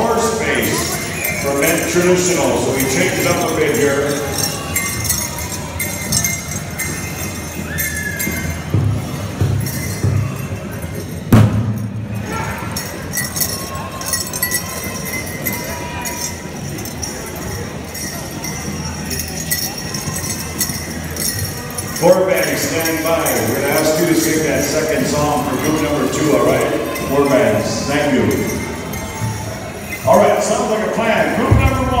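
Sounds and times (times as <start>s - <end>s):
crowd chatter: 0.0s - 32.0s
dancers' bells jingling: 0.0s - 32.0s.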